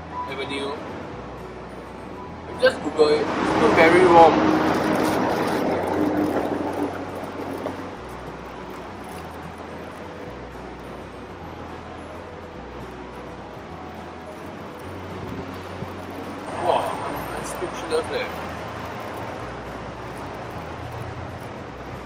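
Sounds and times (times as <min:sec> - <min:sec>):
soft background music: 0:00.0 - 0:22.0
steady outdoor hiss: 0:00.0 - 0:22.0.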